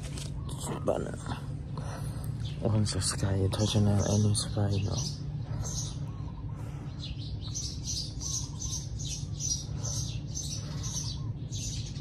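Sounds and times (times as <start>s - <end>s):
small birds chirping: 0.0s - 12.0s
steady low hum: 0.0s - 12.0s.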